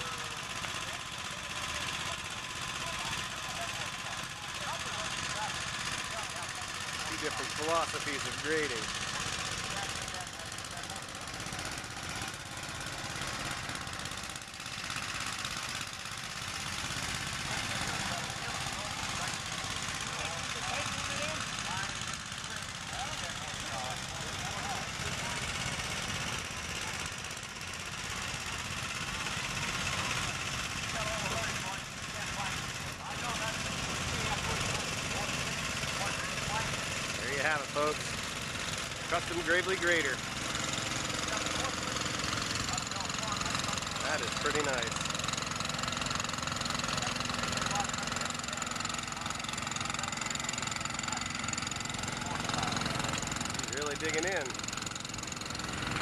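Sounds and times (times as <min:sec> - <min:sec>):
tractor engine running: 0:00.0 - 0:56.0.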